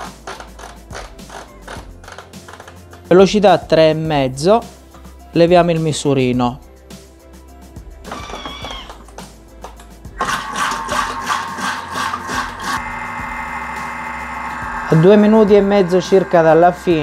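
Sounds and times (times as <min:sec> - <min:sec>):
background music: 0:00.0 - 0:17.0
kitchen machine whisking: 0:10.2 - 0:17.0.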